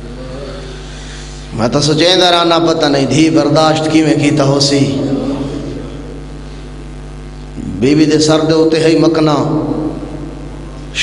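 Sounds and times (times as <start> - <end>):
electrical mains hum: 0.0 - 11.0
man talking: 1.5 - 5.9, 7.6 - 10.0.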